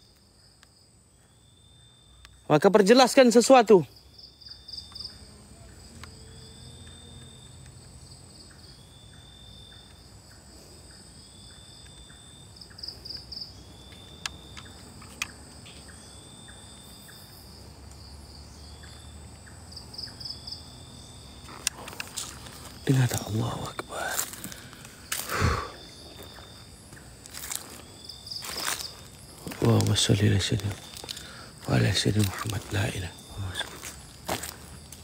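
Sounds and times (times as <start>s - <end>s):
insect high chirp: 0.0s - 35.0s
insect pulsing trill: 0.0s - 35.0s
insect thin high drone: 4.0s - 35.0s.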